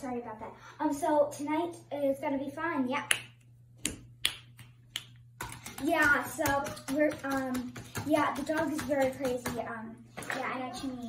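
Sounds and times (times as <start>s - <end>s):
child talking: 0.0s - 3.2s, 5.7s - 11.0s
finger snaps: 3.0s - 5.2s.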